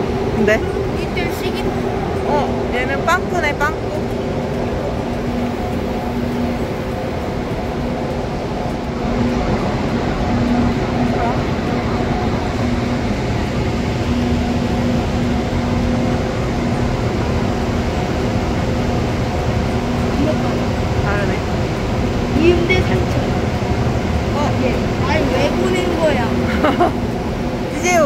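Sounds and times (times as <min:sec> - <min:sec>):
low hum tone: 0:00.0 - 0:28.0
stationary train hum and rumble: 0:00.0 - 0:28.0.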